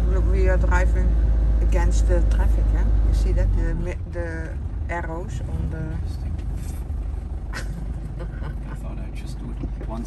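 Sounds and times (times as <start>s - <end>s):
van engine and road noise: 0.0s - 10.0s
person laughing: 7.6s - 9.0s.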